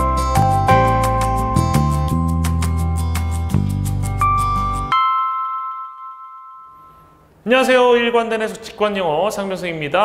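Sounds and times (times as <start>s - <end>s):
bell-like chime: 4.1s - 7.3s.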